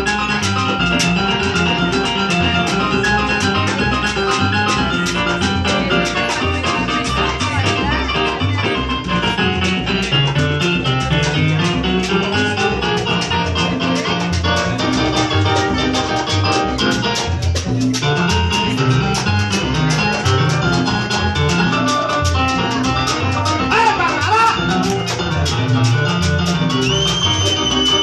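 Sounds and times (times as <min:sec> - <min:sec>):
live salsa band playing: 0:00.0 - 0:28.0.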